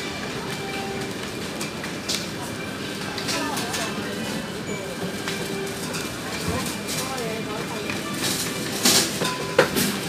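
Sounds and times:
shopping trolley rattling on tiles: 0.0s - 10.0s.

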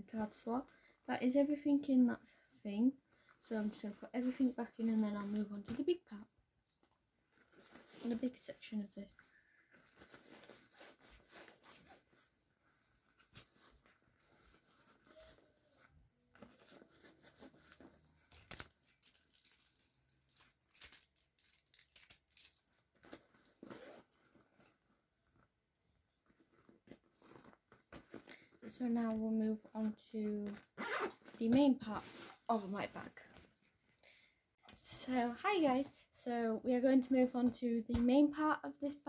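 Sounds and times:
keys clinking and rustling: 18.3s - 23.2s.

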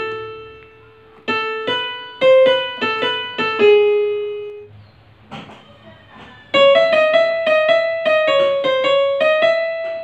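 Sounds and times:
electronic keyboard piano note: 0.0s - 4.8s, 5.5s - 10.0s.

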